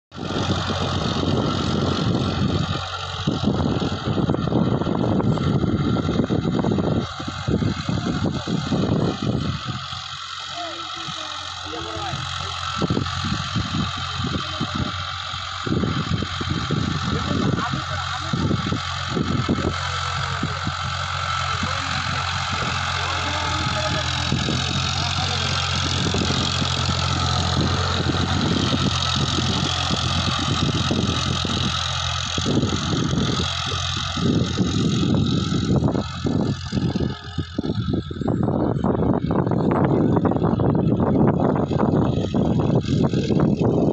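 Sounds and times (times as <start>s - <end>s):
tractor diesel engine running: 0.0s - 43.9s.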